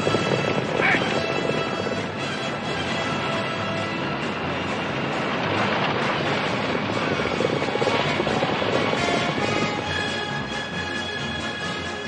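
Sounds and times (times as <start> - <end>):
horses galloping: 0.0 - 12.0
wagons rolling: 0.0 - 12.0.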